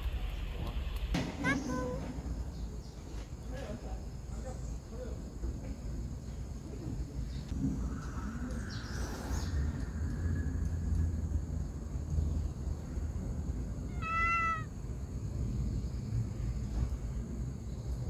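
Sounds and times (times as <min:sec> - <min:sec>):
low outdoor rumble: 0:00.0 - 0:18.0
cat hissing: 0:13.9 - 0:14.7
cat meowing: 0:13.9 - 0:14.7.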